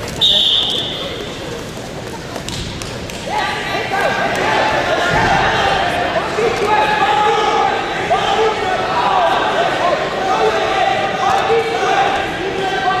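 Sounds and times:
people talking in echoing gym: 0.0s - 13.0s.

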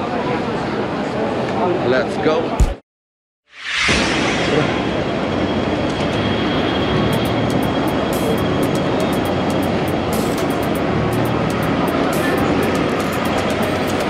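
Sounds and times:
traffic: 3.9s - 14.0s.

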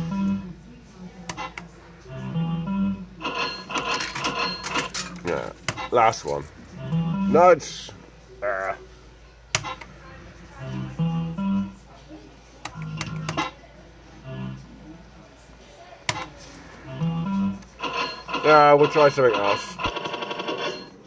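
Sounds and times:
arcade music: 0.0s - 0.4s, 2.1s - 8.1s, 10.5s - 11.8s, 16.8s - 20.9s.

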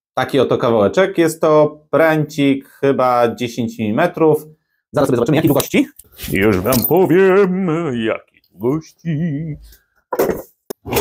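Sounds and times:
man humming a tune: 8.7s - 9.8s.

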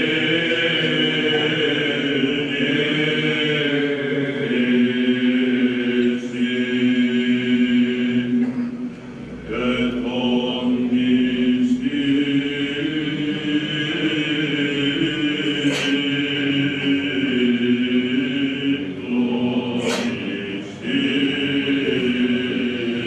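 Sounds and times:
male choir chanting: 0.0s - 23.0s.

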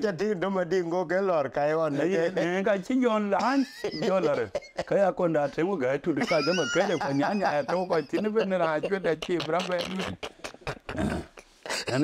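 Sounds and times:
man speaking: 0.0s - 10.3s
man murmuring: 6.3s - 12.0s
mouth clicks: 9.2s - 11.5s.

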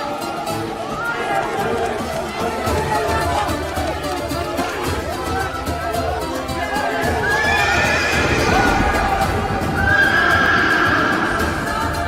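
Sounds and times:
horse neighing: 7.1s - 11.7s.

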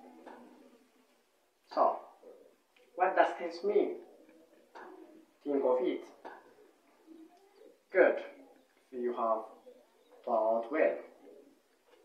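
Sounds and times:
man speaking: 1.7s - 2.2s, 3.0s - 4.0s, 5.4s - 6.2s, 7.9s - 9.6s, 10.2s - 11.2s
bird calling faintly: 3.9s - 12.0s.

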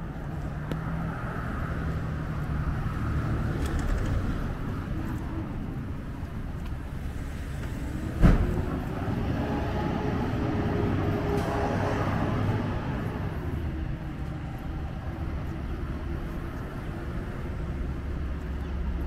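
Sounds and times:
road traffic noise: 0.0s - 19.0s
vehicle engine passing: 6.9s - 18.3s
sharp thump: 8.2s - 8.7s.

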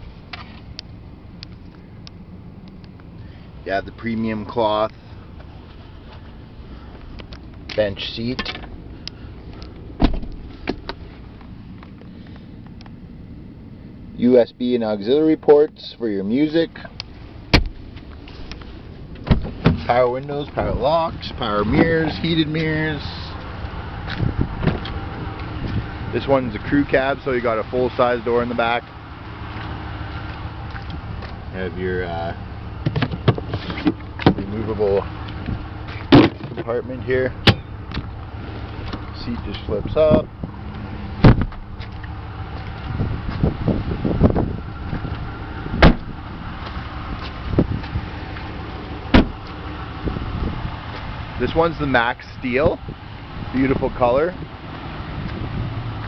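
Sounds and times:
car door shutting thump: 10.0s - 11.0s, 17.5s - 17.8s, 19.2s - 19.9s, 24.6s - 24.9s, 36.0s - 36.6s, 41.2s - 41.6s, 45.8s - 46.1s, 49.1s - 49.4s
wind rumbling on microphone: 20.5s - 27.2s, 37.6s - 56.0s.

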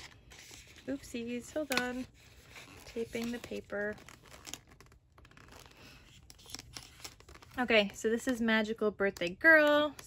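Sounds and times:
cellophane wrapper crinkling: 0.0s - 8.4s.

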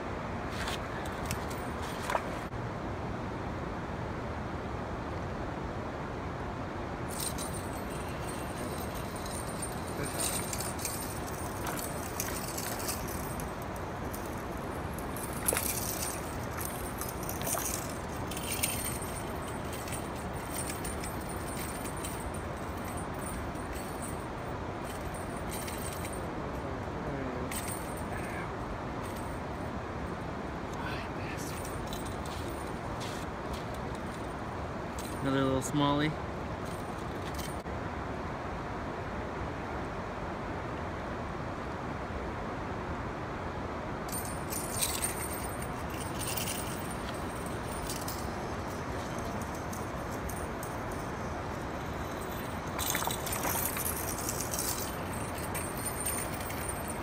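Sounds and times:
steady background hiss: 0.0s - 57.0s
fishing tackle clicking and jingling: 7.1s - 26.3s, 27.5s - 28.4s, 44.1s - 57.0s.

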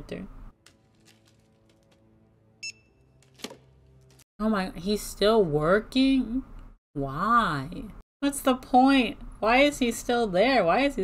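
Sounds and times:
barcode scanner beep: 2.6s - 2.9s.

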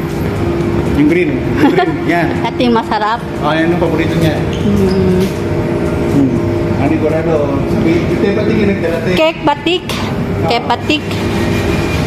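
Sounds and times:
low background hum: 0.0s - 12.0s
people talking: 1.0s - 5.3s, 6.1s - 11.1s.

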